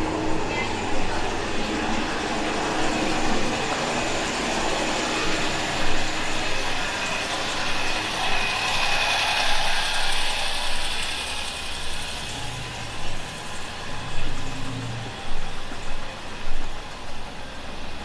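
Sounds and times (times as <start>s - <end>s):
cars and trucks passing: 12.3s - 15.3s.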